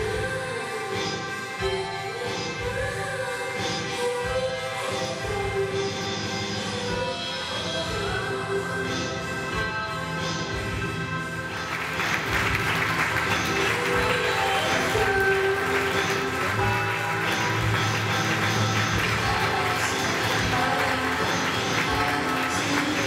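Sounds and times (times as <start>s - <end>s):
runway show music: 0.0s - 23.0s
audience applause: 11.6s - 23.0s.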